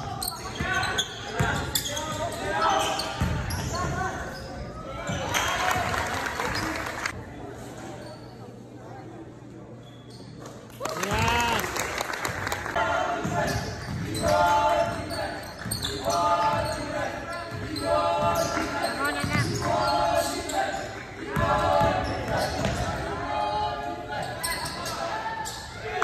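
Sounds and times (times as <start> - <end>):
voices echoing: 0.0 - 10.4, 12.7 - 26.0
shoe squeaks: 0.2 - 5.2, 7.8 - 8.6, 9.8 - 10.4, 13.4 - 20.9, 21.8 - 23.0, 24.1 - 25.8.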